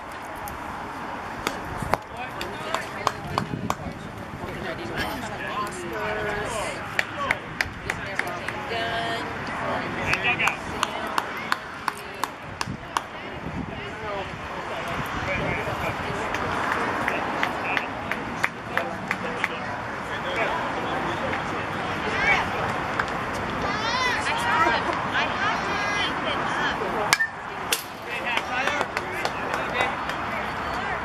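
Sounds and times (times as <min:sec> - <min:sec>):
people calling and chattering: 0:00.0 - 0:31.0
sharp claps: 0:01.4 - 0:04.0, 0:06.9 - 0:08.6, 0:10.1 - 0:13.2, 0:16.3 - 0:19.6, 0:27.1 - 0:30.8.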